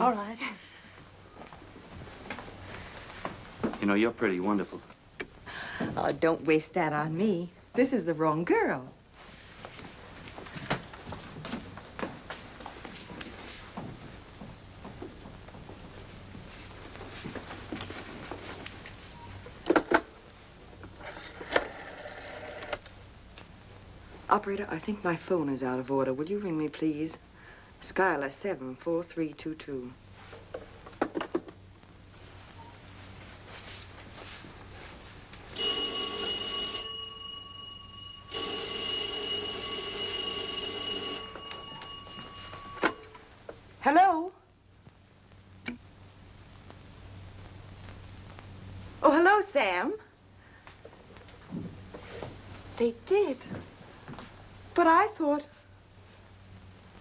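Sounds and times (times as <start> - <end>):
telephone bell ringing: 21.6 - 22.8, 35.5 - 43.3.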